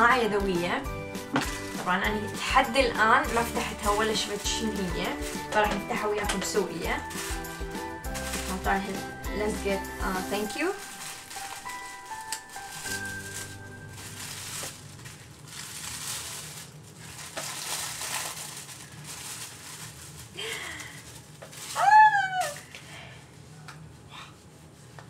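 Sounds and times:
soft background music: 0.0 - 16.4
tissue paper rustling: 1.2 - 22.6.

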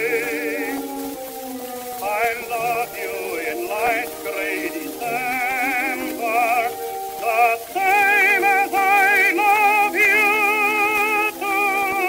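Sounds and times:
orchestral chords: 0.0 - 12.0
record surface hiss: 0.0 - 12.0
tenor voice singing with vibrato: 0.0 - 12.0.

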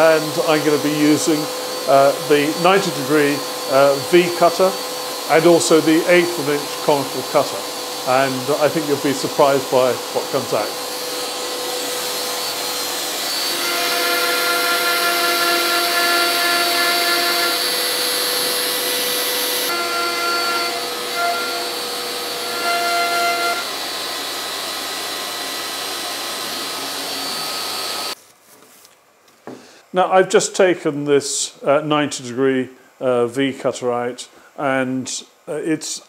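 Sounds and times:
router motor carving wood: 0.0 - 28.2
steady tones from motor: 0.0 - 28.2.

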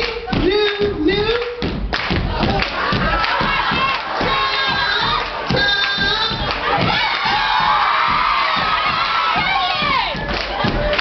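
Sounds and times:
hand claps: 0.0 - 11.0
rhythmic stomps: 0.0 - 11.0
crowd cheering and shouting: 2.1 - 11.0
shouted chant: 2.4 - 11.0.

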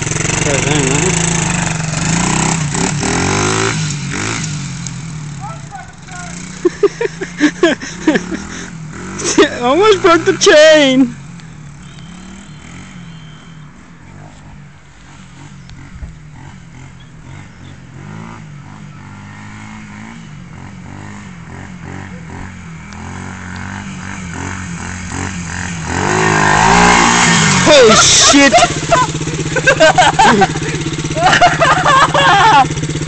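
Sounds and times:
motorbike engine revving: 0.0 - 33.0.

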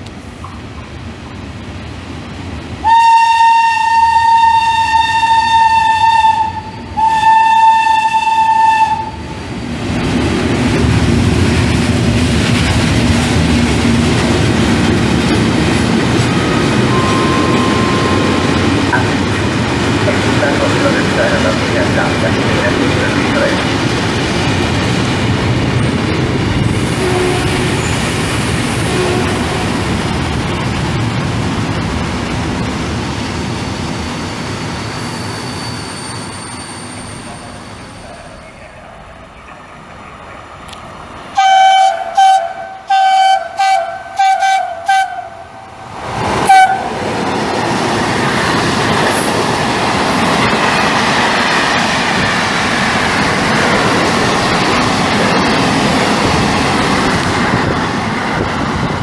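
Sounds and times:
train horn short toots: 2.8 - 9.1, 27.0 - 27.7, 28.9 - 29.7, 41.4 - 45.5, 46.5 - 46.9.

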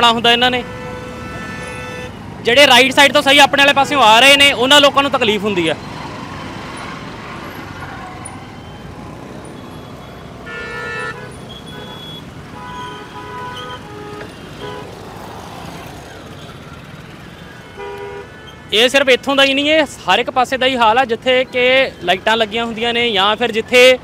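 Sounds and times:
vehicle horns honking: 0.0 - 2.2, 9.6 - 15.0, 17.6 - 19.0
motorcycles and cars in traffic: 0.0 - 24.0.

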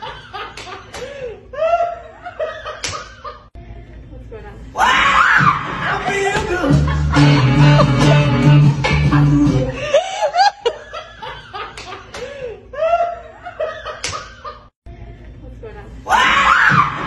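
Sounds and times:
music: 5.0 - 9.9
man laughing hard: 6.0 - 14.7.

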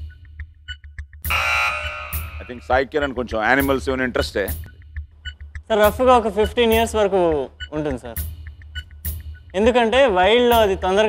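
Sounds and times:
electronic suspense music: 0.0 - 11.0
harsh buzzer tone: 1.3 - 2.7.

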